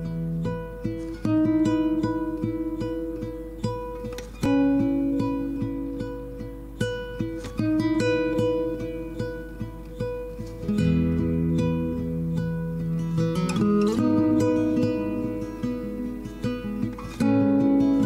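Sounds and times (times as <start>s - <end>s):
plucked guitar music: 0.0s - 18.0s.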